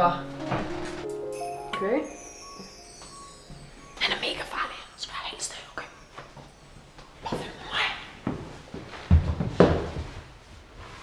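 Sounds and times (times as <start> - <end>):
woman whispering: 4.0 - 6.0, 7.2 - 8.2.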